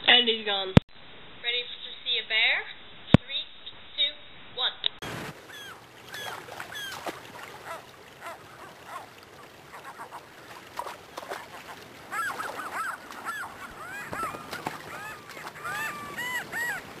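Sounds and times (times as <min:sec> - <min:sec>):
gulls calling: 0:05.0 - 0:17.0
river rapids rushing: 0:05.1 - 0:17.0.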